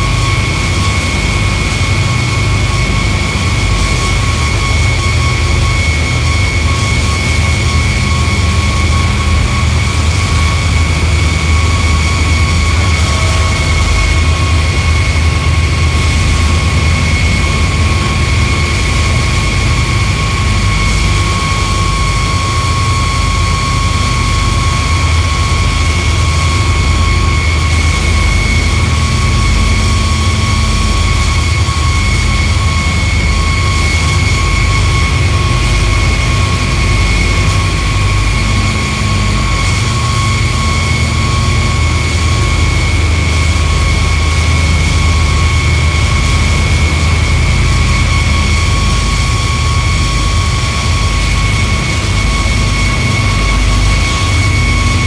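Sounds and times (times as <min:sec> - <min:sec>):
rumbling noise drone: 0:00.0 - 0:55.0
steady high whine: 0:00.0 - 0:55.0.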